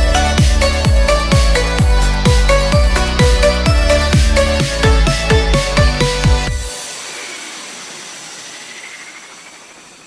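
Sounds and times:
steady hiss: 6.7 - 10.0.

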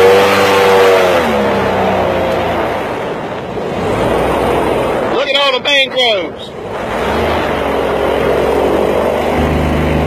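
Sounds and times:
boat engine running: 0.0 - 10.0.

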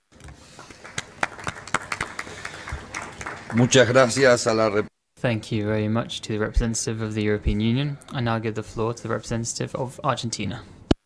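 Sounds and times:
people clapping: 0.1 - 4.9.

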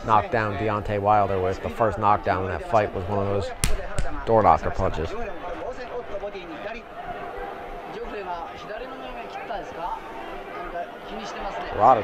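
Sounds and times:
faint crowd hubbub: 0.0 - 12.0.

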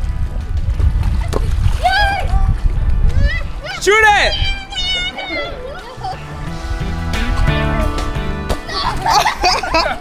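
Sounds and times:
pool water splashing: 0.0 - 10.0.

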